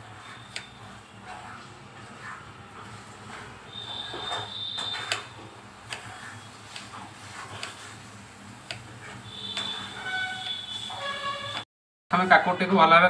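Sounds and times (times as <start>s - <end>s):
high steady whistling tone: 0.2s - 1.0s, 3.7s - 5.3s, 9.2s - 11.6s.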